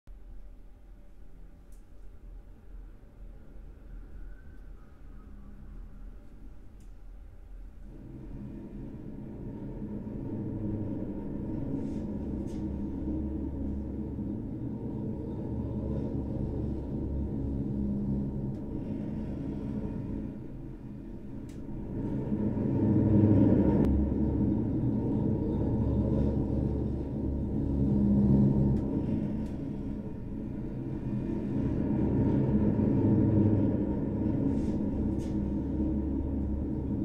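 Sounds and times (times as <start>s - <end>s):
droning music sustained tones: 3.2s - 37.0s.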